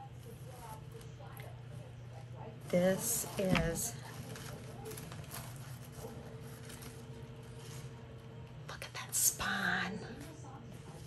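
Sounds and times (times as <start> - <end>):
faint steady hum: 0.0 - 11.0
paper packaging rustling: 2.6 - 8.6
person whispering: 8.7 - 10.3.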